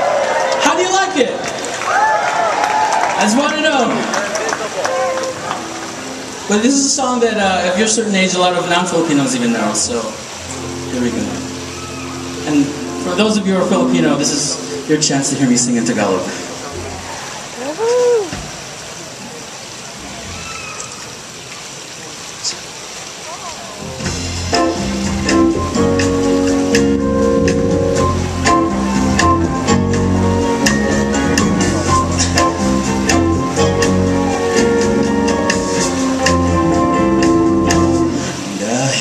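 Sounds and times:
audience whooping: 0.0 - 0.9, 1.7 - 5.8, 17.0 - 18.4
band and orchestra playing ballad: 3.5 - 18.0, 23.8 - 39.0.

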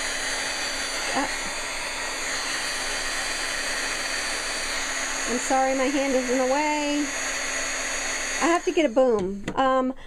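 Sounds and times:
heat gun fan blowing: 0.0 - 9.5.

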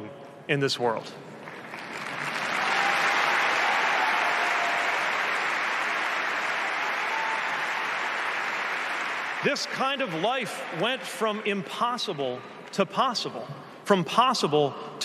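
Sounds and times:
large audience applauding: 1.4 - 11.5.

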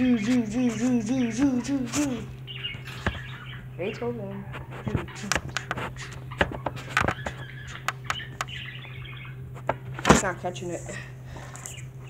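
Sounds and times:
pet bird calling: 0.0 - 10.3
steady low hum: 0.0 - 12.0
sharp clicks: 6.4 - 8.6.

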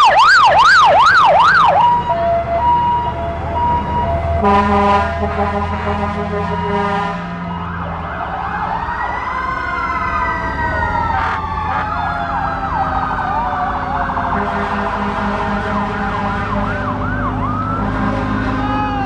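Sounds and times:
siren yelp: 0.0 - 19.0
sirens wailing: 0.0 - 19.0
vehicle engines running: 0.0 - 19.0.

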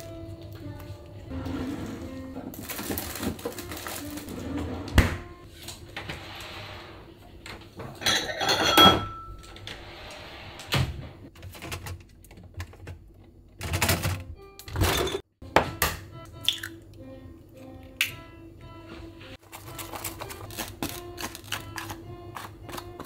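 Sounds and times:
background music: 0.0 - 9.4, 13.6 - 23.0
kitchen items clattering: 0.0 - 10.0, 11.2 - 16.8, 19.0 - 23.0
refrigerator drawer shutting: 1.3 - 6.2.

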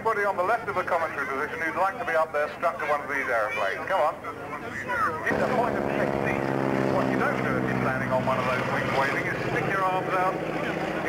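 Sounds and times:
biplane engine droning past: 5.2 - 11.0.

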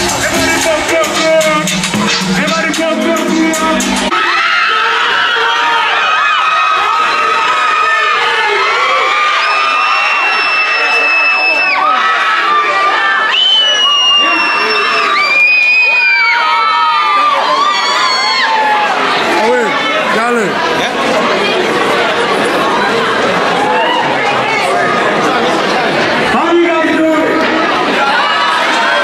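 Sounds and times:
music with thumping beat: 0.0 - 4.1
crowd screaming and cheering: 0.0 - 29.0.

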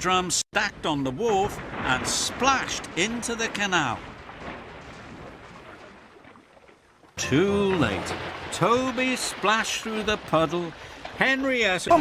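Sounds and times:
water splashing and churning: 0.6 - 12.0.

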